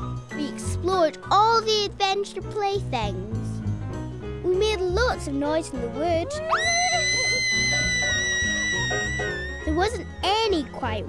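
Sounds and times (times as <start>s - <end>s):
background music: 0.0s - 11.0s
girl squealing: 6.1s - 10.2s.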